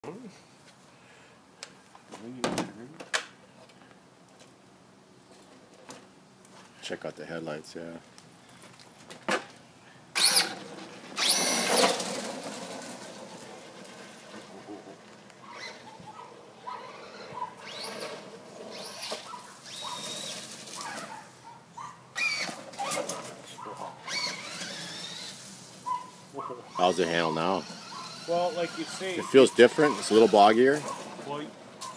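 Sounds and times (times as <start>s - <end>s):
electric motor whine: 16.9s - 20.6s.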